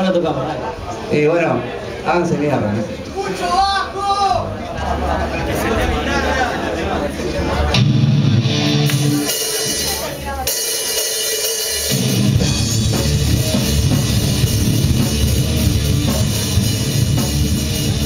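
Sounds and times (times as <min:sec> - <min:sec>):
electric guitars: 0:07.6 - 0:18.0
drum kit: 0:07.7 - 0:18.0.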